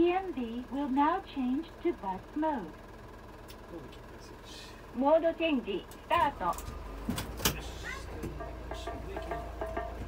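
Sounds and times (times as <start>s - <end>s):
vehicle idling with low hum: 0.0s - 10.0s
rhythmic music: 7.9s - 10.0s.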